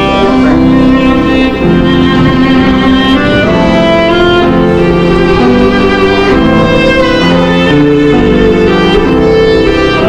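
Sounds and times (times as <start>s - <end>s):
solo violin melody: 0.0s - 10.0s.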